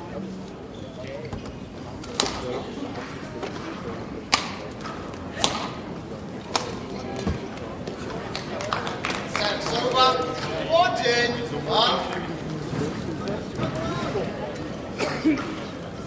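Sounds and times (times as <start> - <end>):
background voices in hall: 0.0 - 16.0
racket hitting shuttlecock: 2.0 - 2.4, 4.3 - 5.9.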